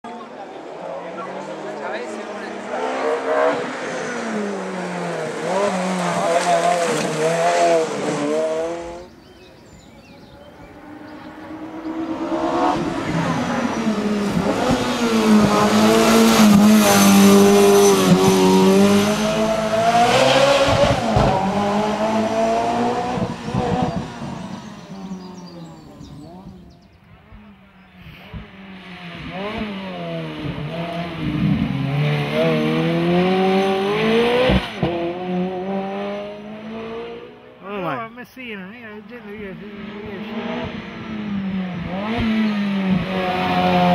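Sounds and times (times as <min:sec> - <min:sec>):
car engine revving hard: 0:00.4 - 0:09.2, 0:10.6 - 0:26.2, 0:28.2 - 0:37.6, 0:39.6 - 0:43.9.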